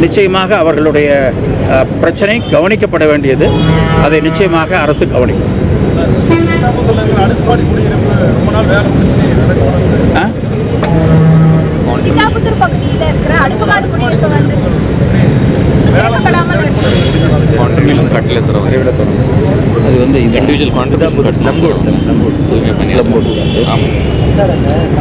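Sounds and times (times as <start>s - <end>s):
men talking: 0.0s - 10.9s, 11.6s - 12.4s, 14.0s - 25.0s.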